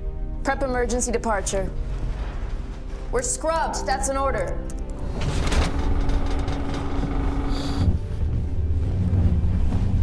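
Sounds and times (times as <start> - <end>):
dramatic film score: 0.0 - 10.0
deep dust storm rumble: 5.2 - 10.0.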